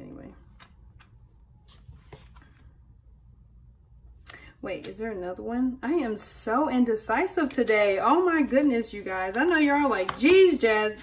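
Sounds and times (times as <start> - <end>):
paper rustling: 0.4 - 2.8, 7.4 - 10.8.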